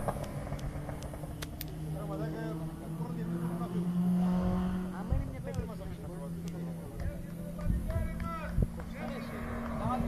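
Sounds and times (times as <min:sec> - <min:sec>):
car engine running hard: 0:00.0 - 0:10.0.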